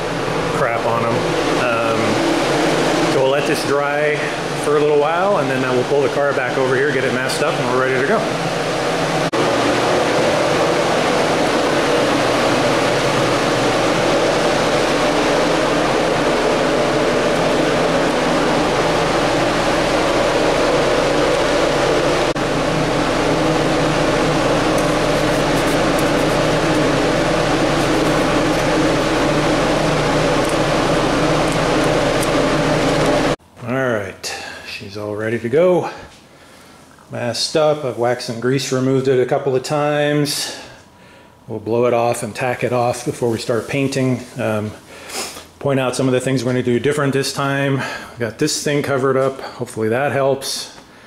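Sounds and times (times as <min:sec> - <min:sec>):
ventilation fan drone: 0:00.0 - 0:51.0.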